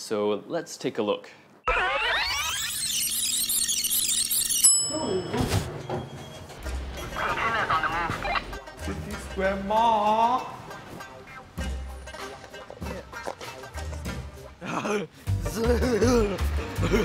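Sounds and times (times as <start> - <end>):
videotape rewind squeal: 1.6 - 5.2
background music: 6.0 - 17.0
voices: 7.0 - 10.6.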